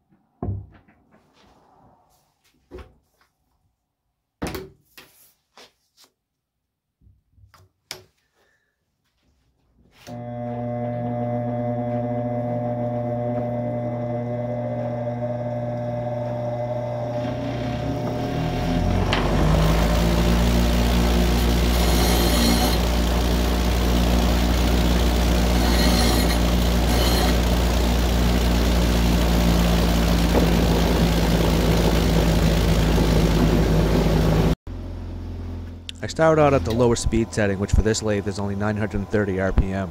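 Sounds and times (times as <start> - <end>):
bench grinder motor humming: 10.1 - 34.6, 36.6 - 39.9
steel grinding on wheel: 17.0 - 31.8.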